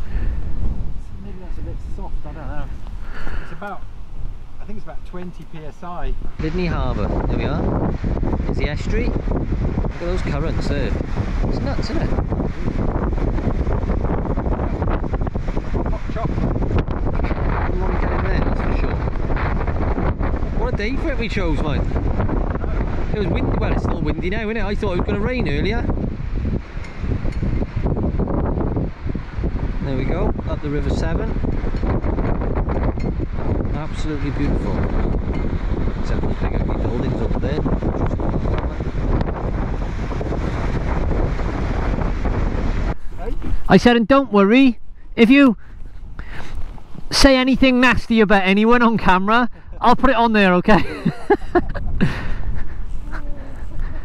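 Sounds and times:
wind buffeting microphone: 0:00.0 - 0:54.0
person laughing breathily: 0:50.8 - 0:54.0.

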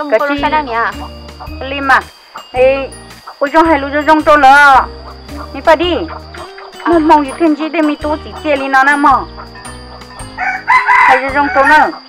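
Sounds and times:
background music: 0:00.0 - 0:12.0
rooster crowing: 0:10.0 - 0:12.0.

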